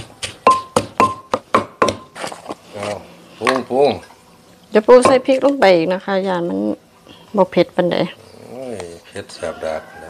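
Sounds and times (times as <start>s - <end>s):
wooden pestle pounding in mortar: 0.0s - 2.2s.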